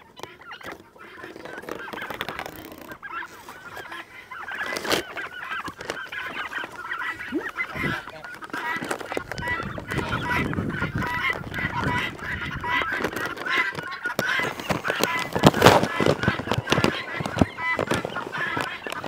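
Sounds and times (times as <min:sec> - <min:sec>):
geese honking: 0:00.0 - 0:19.0
poultry calling: 0:00.0 - 0:19.0.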